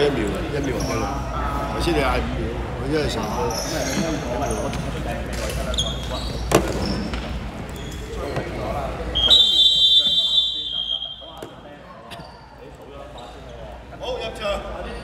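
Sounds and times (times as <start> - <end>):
voices in hall: 0.0 - 15.0
referee's whistle blast: 9.2 - 11.5.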